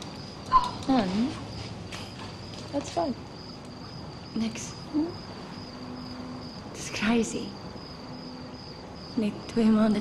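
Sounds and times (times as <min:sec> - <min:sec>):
cricket trilling: 0:00.0 - 0:10.0.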